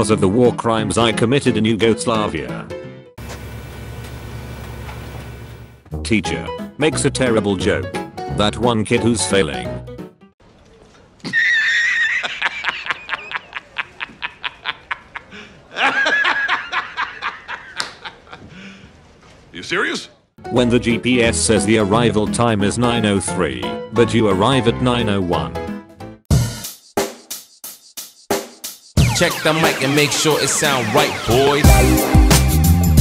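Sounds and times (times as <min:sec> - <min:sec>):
man laughing: 0:11.2 - 0:18.8
music with drum beat: 0:26.3 - 0:33.0.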